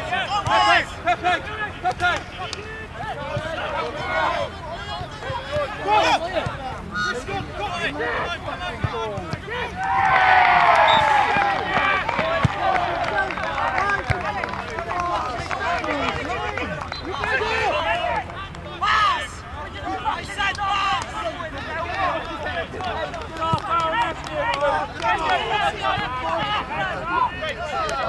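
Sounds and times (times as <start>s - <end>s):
players calling and shouting: 0.0s - 28.0s.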